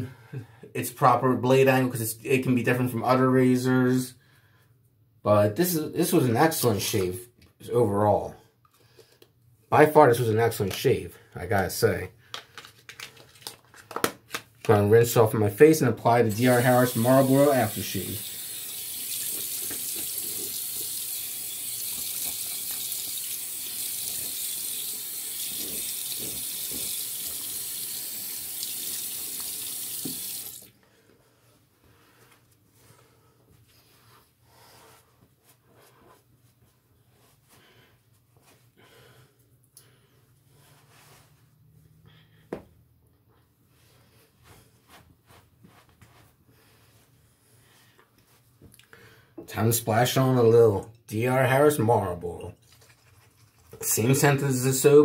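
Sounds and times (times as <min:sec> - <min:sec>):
sink tap running: 0:16.3 - 0:30.7.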